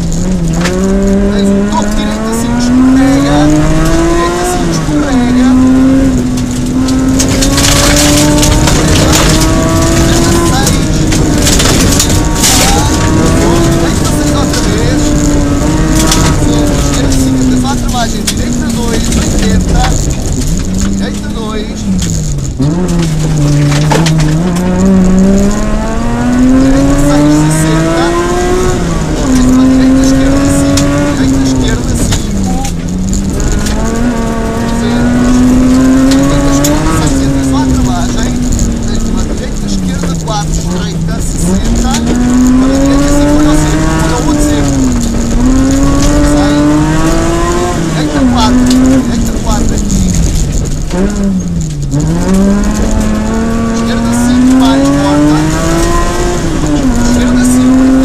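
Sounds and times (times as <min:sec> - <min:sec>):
gravel clattering against car: 0:00.0 - 0:58.0
rally car engine revving: 0:00.0 - 0:58.0.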